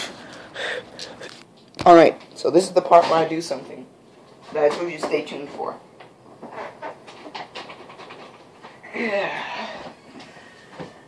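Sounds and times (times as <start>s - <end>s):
quick breathy panting: 0.0s - 1.4s.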